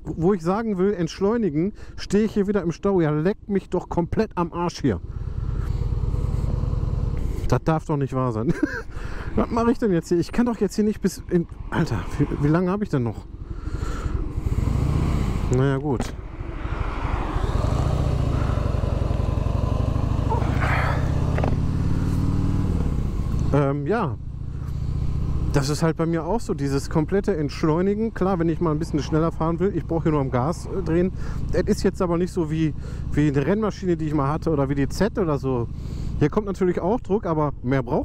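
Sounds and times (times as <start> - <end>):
motorcycle engine idling low: 9.1 - 16.4, 17.4 - 37.8.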